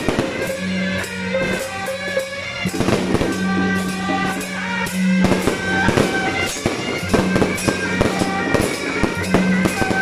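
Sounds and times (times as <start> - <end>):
fireworks bangs and crackle: 0.0 - 10.0
loud music with drone: 0.0 - 10.0.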